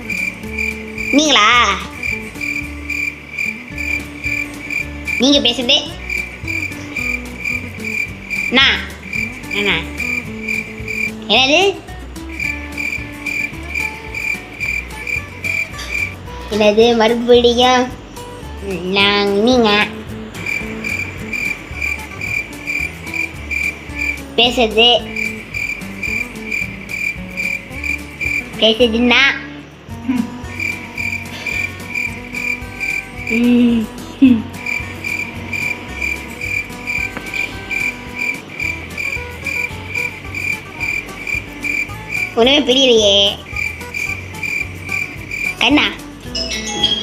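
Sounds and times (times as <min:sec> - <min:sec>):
cricket chirping: 0:00.0 - 0:16.3, 0:20.0 - 0:28.9, 0:29.9 - 0:47.0
quiet background music: 0:00.0 - 0:47.0.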